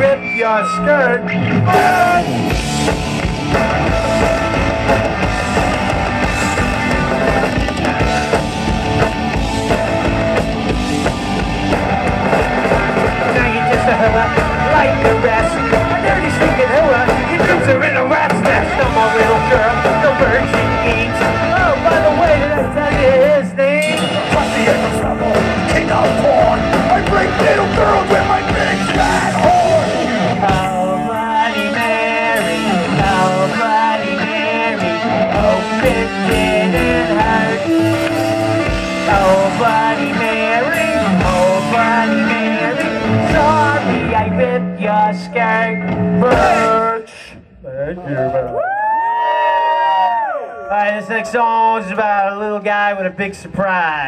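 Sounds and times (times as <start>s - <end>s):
punk rock band playing: 0.0s - 47.1s.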